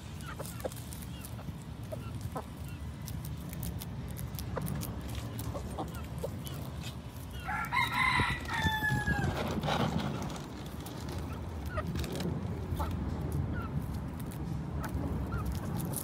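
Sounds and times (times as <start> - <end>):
chickens pecking on gravel: 0.0 - 16.0
rooster crowing: 7.4 - 9.4.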